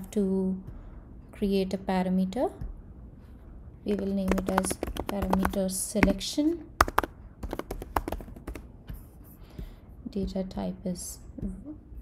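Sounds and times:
computer keyboard keystrokes: 3.9 - 6.2, 6.8 - 8.7.

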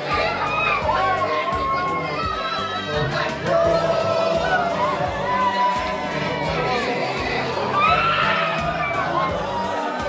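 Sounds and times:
crowded room noise: 0.0 - 10.0
women wailing: 0.1 - 10.0.

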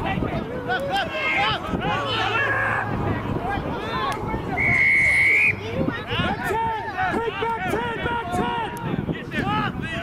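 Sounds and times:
players shouting: 0.0 - 10.0
referee's whistle blast: 4.6 - 5.6.

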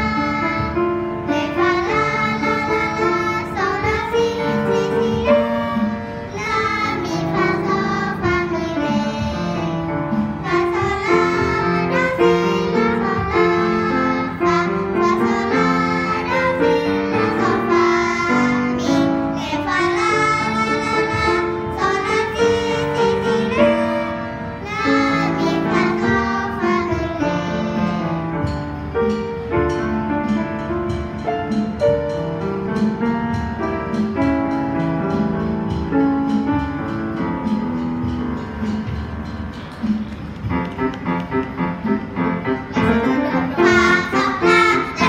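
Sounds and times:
girls singing together: 0.0 - 9.6, 10.4 - 28.0, 42.8 - 45.0
grand piano: 0.0 - 45.0.

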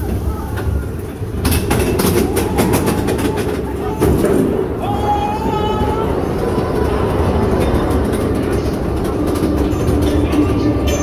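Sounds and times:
roller coaster lift rattling: 0.0 - 11.0.

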